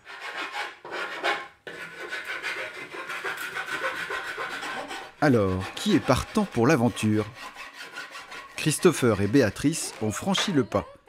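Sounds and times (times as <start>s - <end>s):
file rasping wood: 0.0s - 10.6s.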